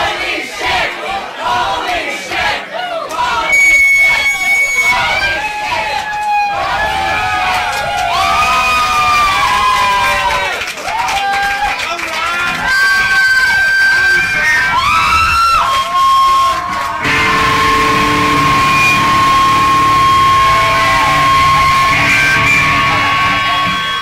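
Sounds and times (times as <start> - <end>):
crowd noise: 0.0 - 24.0
high feedback tone: 3.4 - 5.5, 17.0 - 24.0
rock band playing: 17.0 - 24.0
squealing electric guitar: 17.0 - 24.0.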